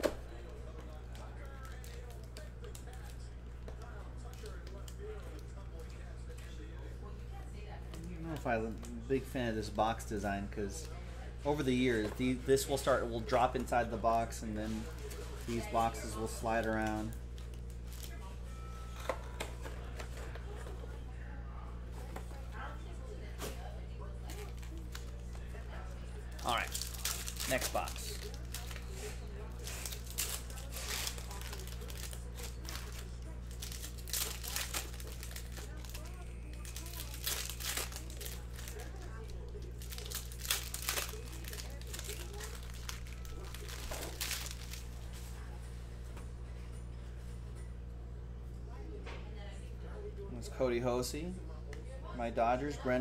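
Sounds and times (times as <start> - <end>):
foil wrappers tearing and crinkling: 11.5 - 18.2, 24.2 - 25.4, 26.3 - 45.2.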